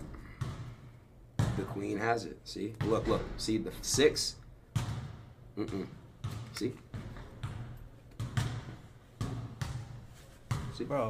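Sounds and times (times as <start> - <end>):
man speaking: 6.5 - 6.9, 10.7 - 11.0.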